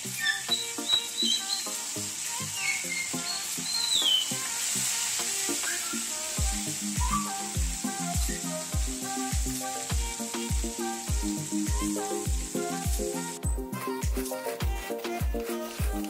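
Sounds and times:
fish sizzling in hot oil: 0.0s - 16.0s
background music with deep beat: 6.4s - 16.0s.

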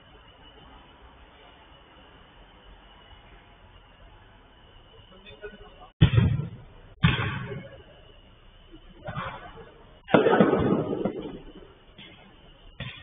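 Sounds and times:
football hitting boards and netting: 6.0s - 7.8s, 9.0s - 9.5s, 10.1s - 12.2s, 12.8s - 13.0s.

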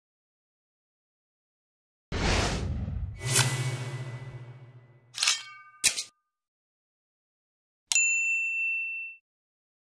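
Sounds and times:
notification bell ding: 7.9s - 9.2s.

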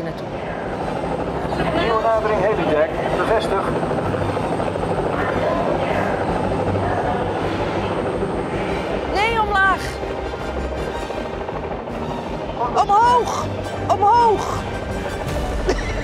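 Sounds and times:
helicopter rotor and engine: 0.0s - 16.0s.

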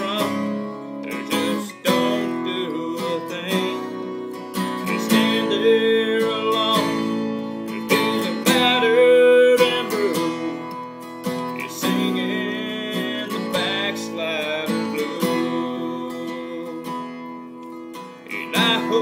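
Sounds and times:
acoustic guitar strumming: 0.0s - 19.0s
man singing country song: 0.0s - 19.0s.

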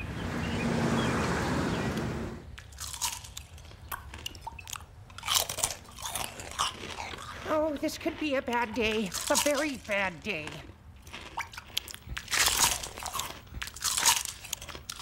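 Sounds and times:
cereal being chewed loudly: 2.6s - 15.0s.

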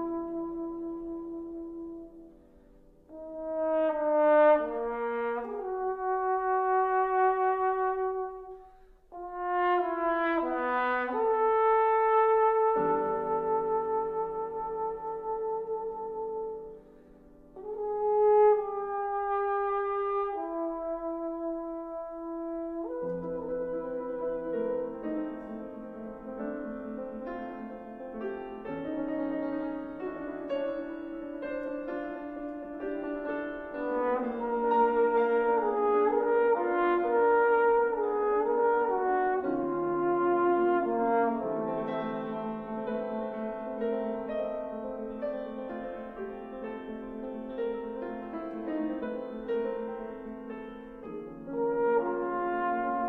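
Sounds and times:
trombone playing: 0.0s - 2.3s, 3.1s - 16.8s, 17.6s - 46.2s, 48.2s - 53.0s
piano chord: 0.0s - 53.0s.

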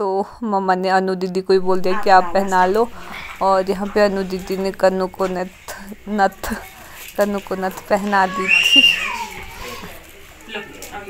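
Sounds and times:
murmur of background chatter: 1.6s - 11.0s.

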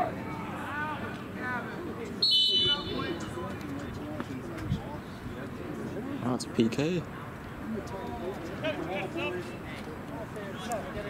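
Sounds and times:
referee's whistle blast: 2.2s - 3.4s
voices shouting: 2.2s - 3.5s.

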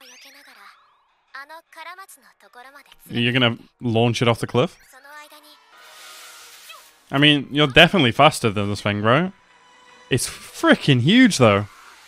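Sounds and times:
cartoon character speaking: 6.7s - 8.3s.

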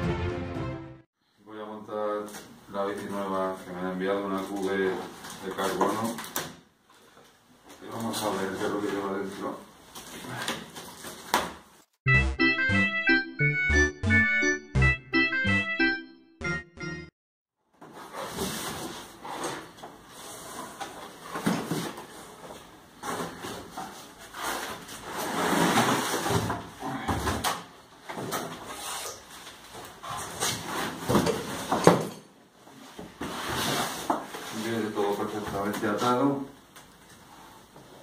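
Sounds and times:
cardboard flaps scraping: 17.8s - 26.7s, 33.0s - 36.0s.

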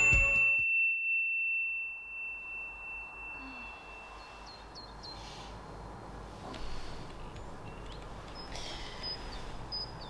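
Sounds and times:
high bell ding: 0.0s - 4.6s.

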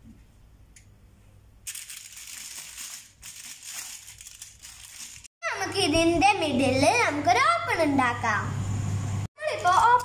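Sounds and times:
aluminium foil crinkling: 1.6s - 5.3s, 9.4s - 10.0s.

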